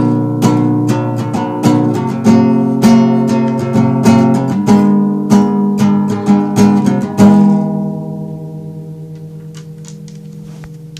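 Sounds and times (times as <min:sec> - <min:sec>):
strummed guitar chord: 0:00.0 - 0:10.9.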